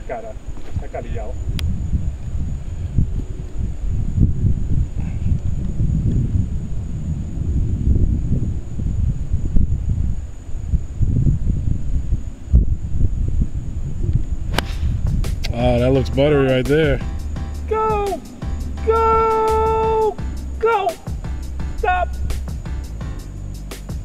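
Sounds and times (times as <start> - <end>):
wind buffeting microphone: 0.0 - 22.7.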